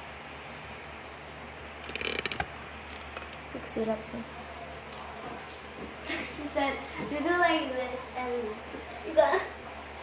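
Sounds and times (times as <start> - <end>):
low hiss with faint hum: 0.0 - 10.0.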